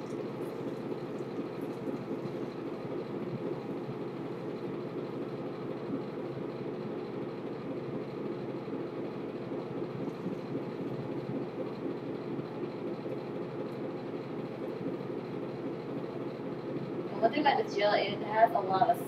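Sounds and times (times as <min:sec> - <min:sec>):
low rumbling background noise: 0:00.0 - 0:19.0.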